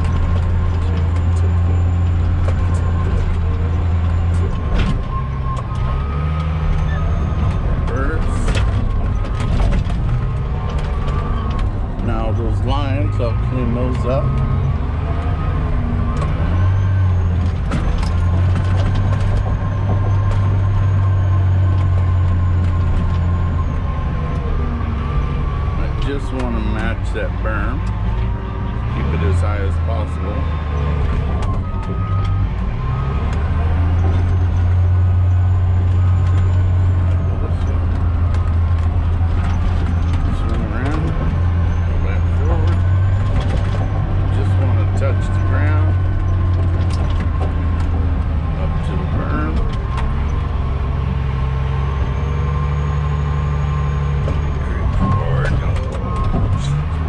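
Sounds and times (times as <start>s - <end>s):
diesel engine under load: 0.0s - 57.0s.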